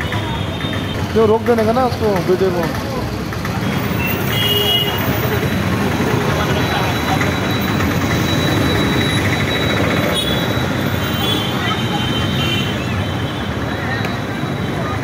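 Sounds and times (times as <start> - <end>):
motorbike engines: 0.0 - 15.0
road noise: 0.0 - 15.0
horn beeps: 3.7 - 15.0.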